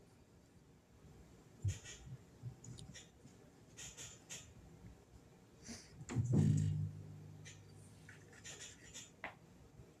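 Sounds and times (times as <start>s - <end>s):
fingers rubbing on phone: 1.6s - 2.2s, 8.1s - 9.2s.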